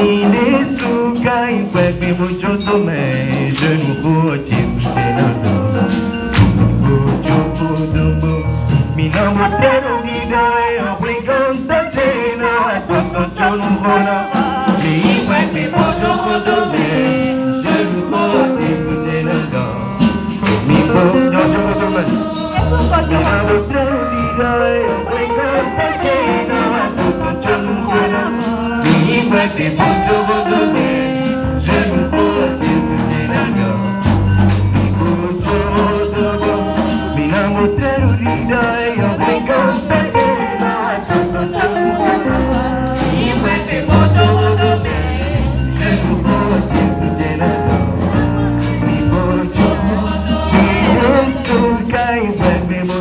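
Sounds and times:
choir singing in harmony: 0.0s - 53.0s
instrumental backing: 0.0s - 53.0s
percussive strikes: 0.0s - 53.0s
low bass notes: 1.8s - 11.1s, 18.7s - 26.2s
hand claps: 6.3s - 6.6s, 20.4s - 20.8s.

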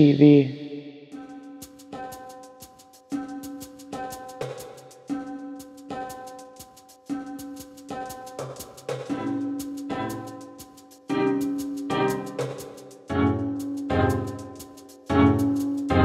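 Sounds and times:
held music chords: 0.0s - 16.0s
light percussion beat: 1.1s - 16.0s.

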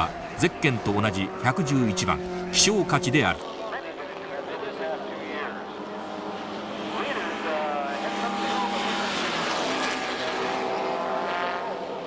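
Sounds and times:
racing car engine passing: 0.0s - 12.0s.

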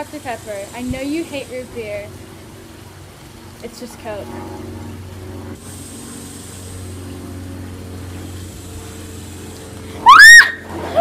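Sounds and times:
steady low hum: 0.0s - 11.0s
girl screaming: 10.0s - 11.0s.

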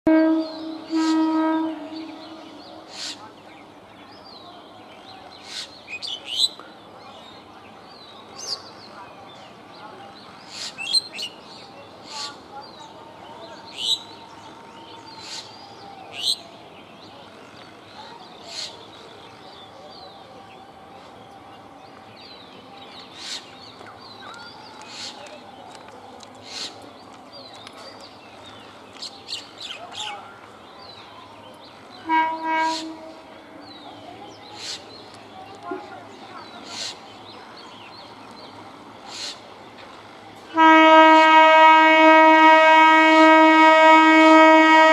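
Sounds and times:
train horn blast: 0.1s - 2.9s, 32.0s - 33.4s, 40.5s - 44.9s
small birds chirping: 1.8s - 40.5s.

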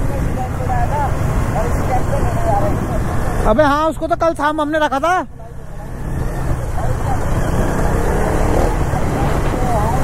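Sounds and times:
motorcycles riding on dirt road: 0.0s - 10.0s.

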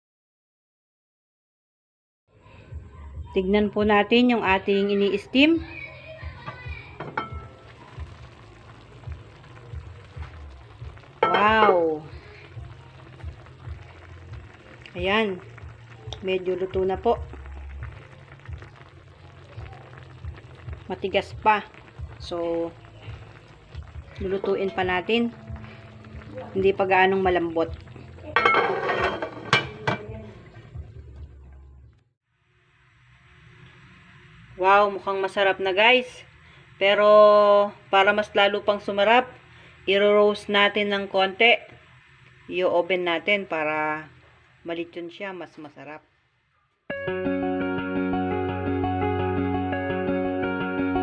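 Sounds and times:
steaming pan hiss and rumble: 4.5s - 31.2s, 32.4s - 45.9s
metallic lid clink: 28.4s - 30.1s.

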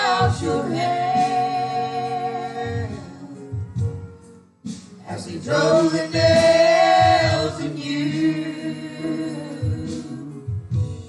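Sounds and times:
voices singing gospel: 0.0s - 4.1s, 4.7s - 11.0s
musical accompaniment: 0.0s - 11.0s.

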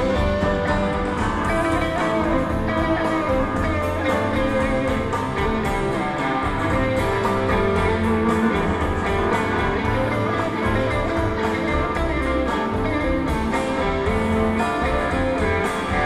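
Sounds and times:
instrumental band music with guitars: 0.0s - 16.0s.

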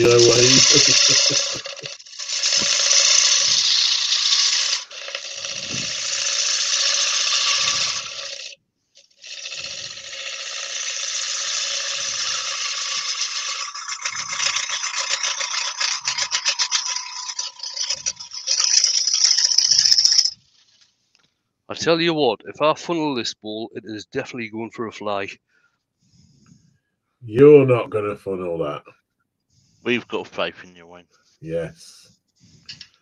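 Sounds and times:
lathe tool cutting wood: 0.0s - 8.4s, 9.3s - 19.2s
scratchy tool chatter: 0.0s - 20.8s.

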